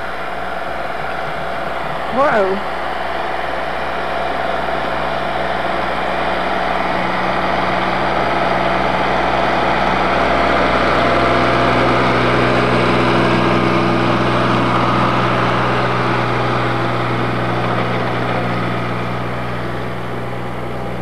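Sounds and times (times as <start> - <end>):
tractor engine running: 0.0 - 21.0.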